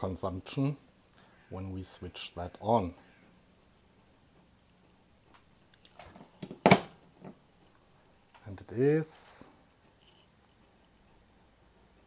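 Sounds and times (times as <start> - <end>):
small clicks and knocks: 4.4 - 8.5.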